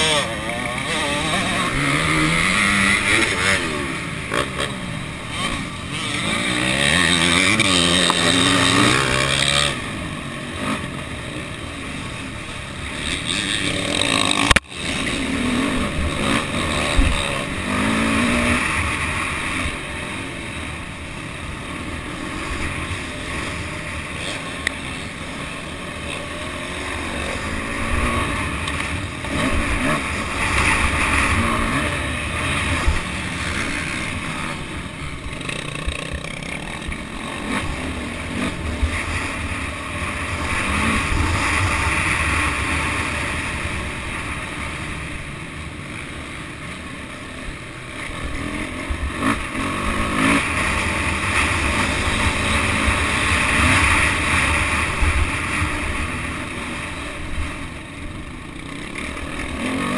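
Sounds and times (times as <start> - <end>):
dirt bike engine revving: 0.0 - 59.9.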